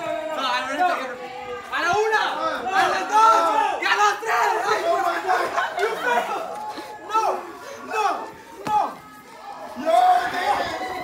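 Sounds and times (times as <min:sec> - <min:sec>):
young men yelling: 0:00.0 - 0:09.0, 0:09.6 - 0:11.0.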